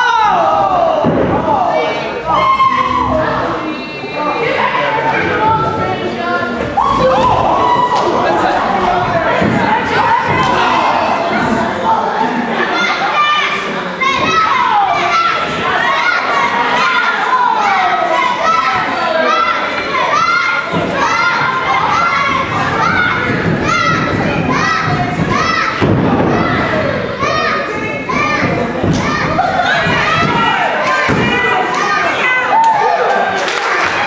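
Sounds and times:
children yelling: 0:06.8 - 0:34.0.

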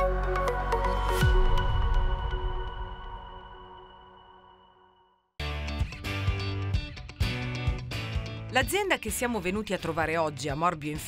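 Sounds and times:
electronic theme final chord: 0:00.0 - 0:05.2.

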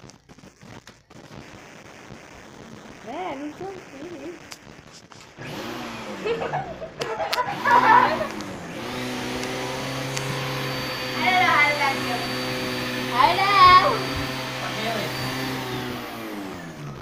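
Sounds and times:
vacuum cleaner running on carpet: 0:05.4 - 0:17.0.

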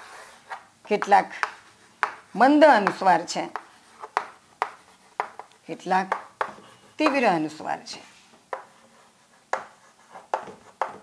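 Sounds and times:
chalk tapping and scraping on blackboard: 0:00.0 - 0:11.0.

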